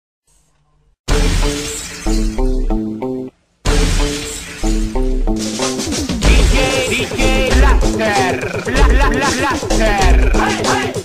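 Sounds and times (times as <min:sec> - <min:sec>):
crash sound effect: 0:01.1 - 0:02.6, 0:03.6 - 0:07.1
sustained musical notes: 0:04.9 - 0:10.6.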